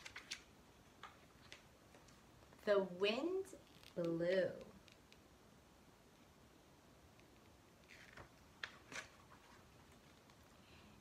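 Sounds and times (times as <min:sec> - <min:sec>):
paper page turning: 0:00.0 - 0:02.2, 0:07.8 - 0:10.5.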